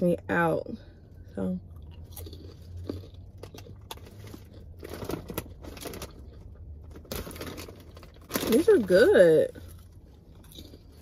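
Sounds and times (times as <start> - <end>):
low steady hum: 0.0 - 11.0
crunchy chewing of popcorn: 1.6 - 8.6, 9.6 - 11.0.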